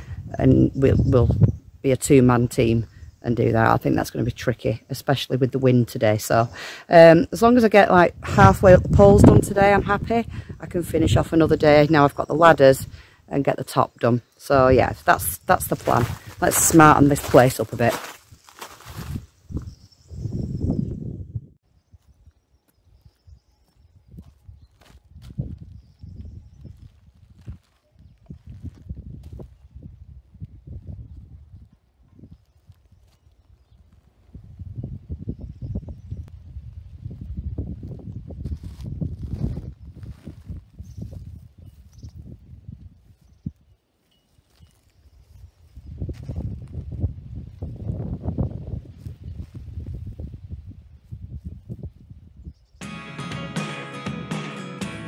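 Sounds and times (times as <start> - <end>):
wind buffeting microphone: 0.0 - 4.8, 6.0 - 13.1, 14.5 - 43.8, 45.0 - 52.8.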